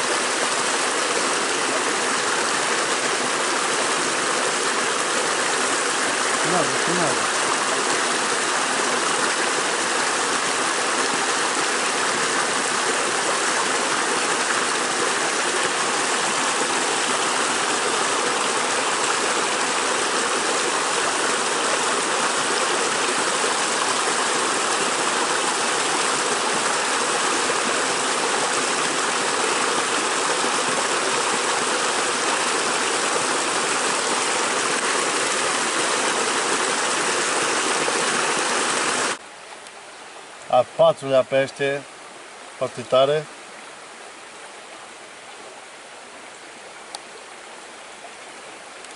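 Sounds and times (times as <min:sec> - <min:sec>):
creek water rippling over stones: 0:00.0 - 0:48.9.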